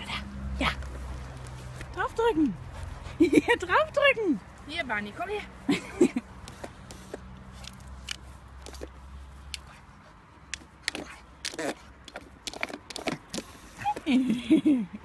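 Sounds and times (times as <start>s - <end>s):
teeth clicking on plastic: 10.5s - 14.1s.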